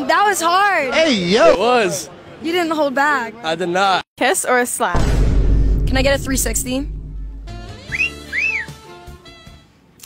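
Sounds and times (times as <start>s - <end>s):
wolf whistle: 7.8s - 8.9s.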